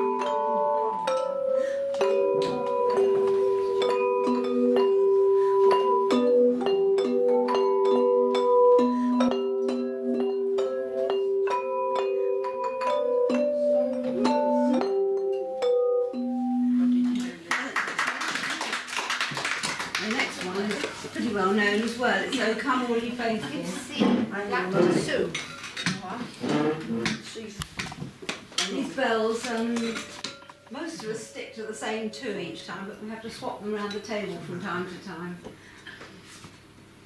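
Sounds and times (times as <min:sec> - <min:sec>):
handbells playing a carol: 0:00.0 - 0:17.2
audience applauding: 0:17.5 - 0:21.0.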